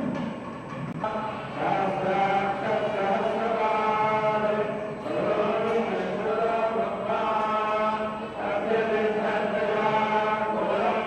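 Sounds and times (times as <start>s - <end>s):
men chanting in unison: 1.0s - 11.0s.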